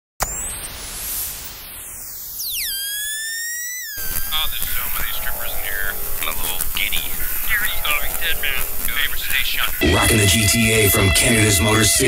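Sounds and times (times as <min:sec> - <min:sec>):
hissing sweep falling in pitch: 0:00.3 - 0:04.4
buzzy electronic tone gliding: 0:01.0 - 0:12.0.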